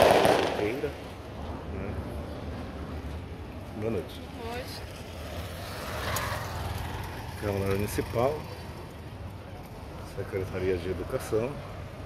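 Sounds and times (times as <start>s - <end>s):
road vehicle passing: 0.0s - 12.0s.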